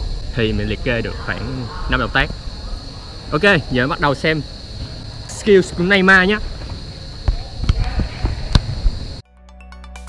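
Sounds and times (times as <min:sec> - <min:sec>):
football thuds on artificial turf: 0:05.7 - 0:09.0.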